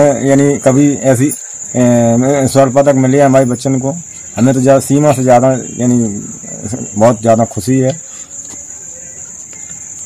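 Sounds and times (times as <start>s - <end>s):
crickets chirping: 0.0s - 10.0s.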